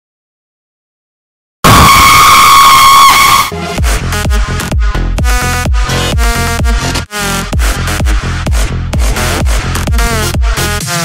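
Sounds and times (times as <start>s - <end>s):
harsh shrill blaring tone: 1.6s - 3.7s.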